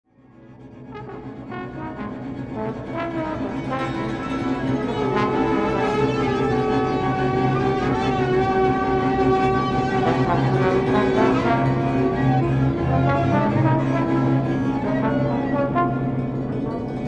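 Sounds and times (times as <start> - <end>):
sustained trombone notes: 0.9 - 17.0
low drone: 1.2 - 17.0.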